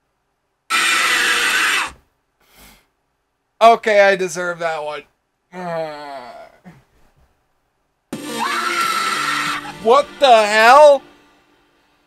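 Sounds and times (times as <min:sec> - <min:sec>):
scream sound effect: 0:00.7 - 0:02.0, 0:08.2 - 0:09.8.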